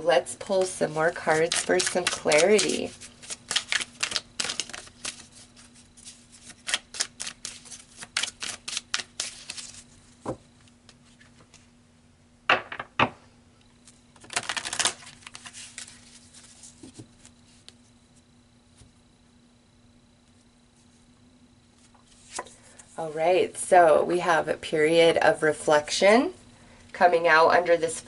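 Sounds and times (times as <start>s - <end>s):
cards being shuffled: 0.6s - 11.7s, 13.8s - 17.8s, 21.8s - 22.9s.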